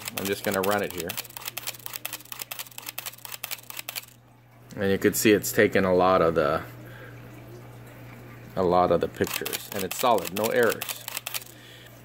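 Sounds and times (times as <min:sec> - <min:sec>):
camera shutter clicking rapidly: 0:00.0 - 0:04.2, 0:09.2 - 0:11.5.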